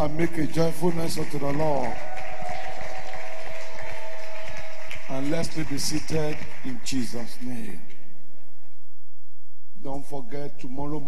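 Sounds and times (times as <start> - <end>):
congregation clapping: 0.0 - 8.0.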